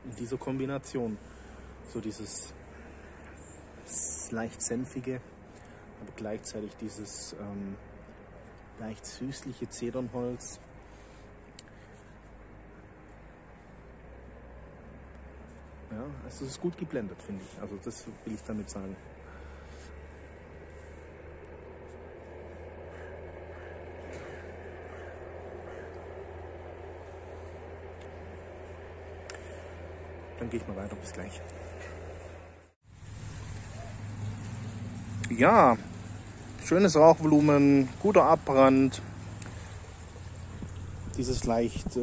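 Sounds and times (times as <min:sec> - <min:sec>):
low outdoor background rumble: 0:00.0 - 0:42.0
stream flowing water: 0:32.9 - 0:42.0.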